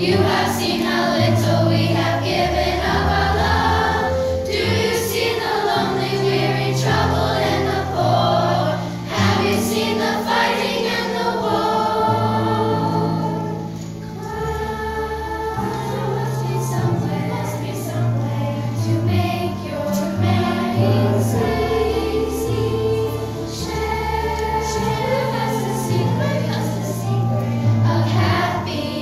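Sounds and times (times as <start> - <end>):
children's choir singing: 0.0 - 29.0
low held accompaniment notes: 0.0 - 29.0.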